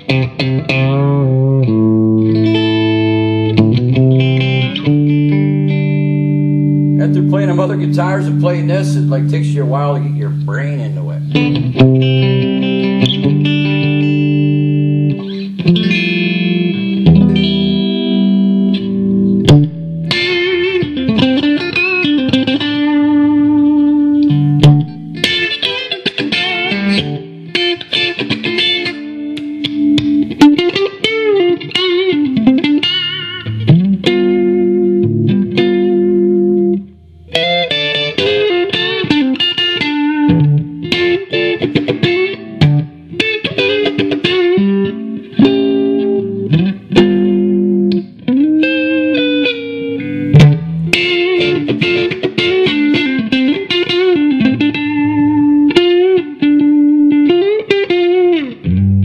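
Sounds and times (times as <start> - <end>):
electric guitar playing: 0.0 - 59.0.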